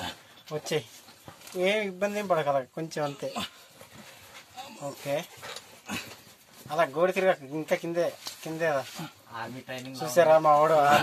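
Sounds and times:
man calling or grunting: 3.0 - 3.7.

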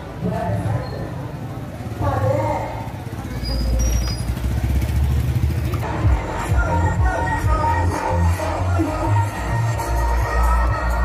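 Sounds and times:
motor tricycle engine idling: 1.1 - 7.8
background music with a beat: 5.8 - 11.0.

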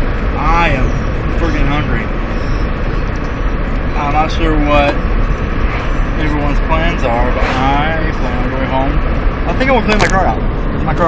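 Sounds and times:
car cabin road and engine noise: 0.0 - 11.0.

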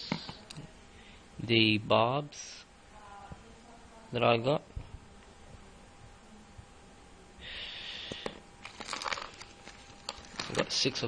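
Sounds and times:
plastic packaging crinkling: 8.6 - 11.0
sharp crackles: 8.6 - 11.0.

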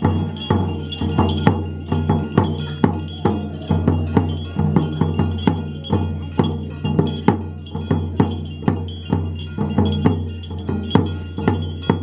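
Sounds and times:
ringing gong and bell strikes: 0.0 - 12.0.

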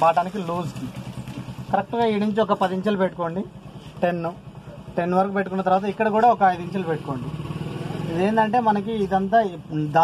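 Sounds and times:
man speaking: 8.0 - 10.0.

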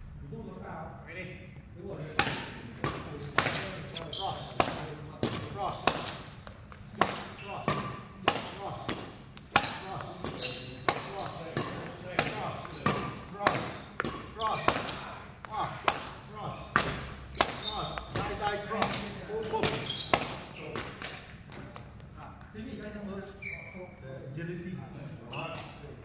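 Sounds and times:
rackets striking shuttlecock: 2.2 - 21.8.

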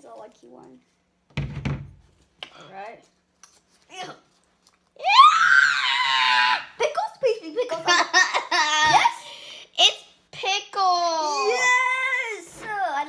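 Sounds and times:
child squealing with laughter: 5.0 - 6.8
child giggling: 7.6 - 10.0.

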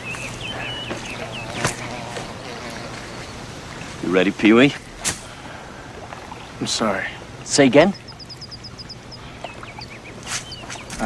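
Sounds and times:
bird singing: 0.0 - 3.9, 7.4 - 11.0.

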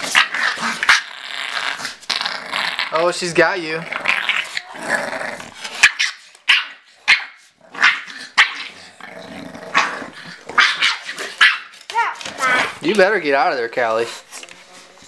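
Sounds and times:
dogs growling: 0.0 - 11.4, 12.2 - 13.0
dogs barking: 5.8 - 8.8, 10.5 - 11.8.

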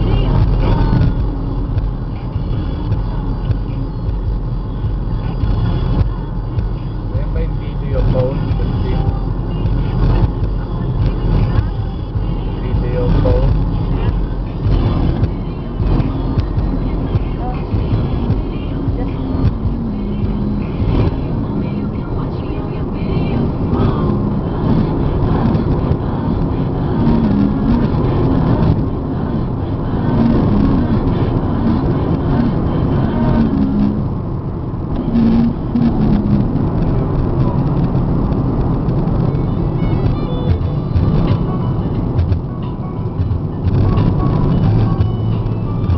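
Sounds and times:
car engine and tyre noise: 0.0 - 45.9.

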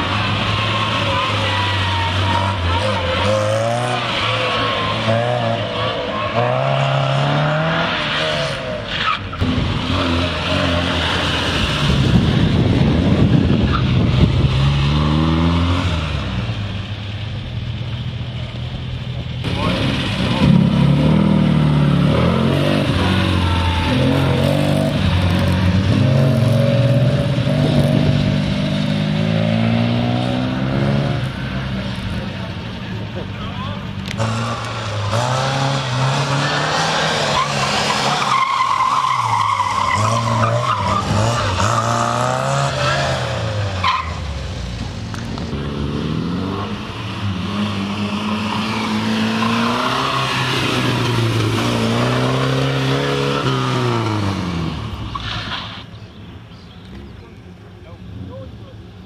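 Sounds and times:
car engines revving: 0.0 - 59.0
tyres squealing: 36.0 - 44.3.

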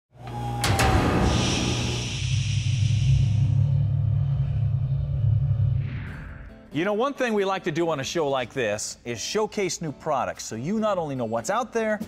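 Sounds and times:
sharp metallic hit: 0.6 - 3.7
hissing whoosh: 1.3 - 4.2
deep steady rumble: 2.8 - 5.9.

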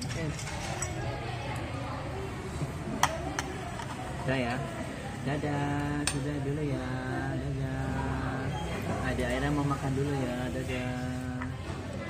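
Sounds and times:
faint restaurant voices: 0.0 - 12.0.

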